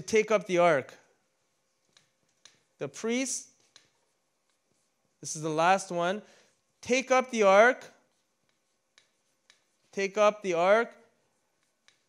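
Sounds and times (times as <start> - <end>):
marker pen tapping on board: 1.8 - 2.7, 3.6 - 4.6, 8.4 - 9.9, 11.6 - 12.0.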